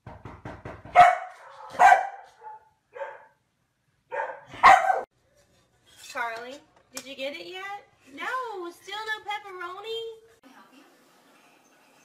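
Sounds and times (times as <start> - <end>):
dog barking: 0.9 - 3.4, 4.1 - 5.1.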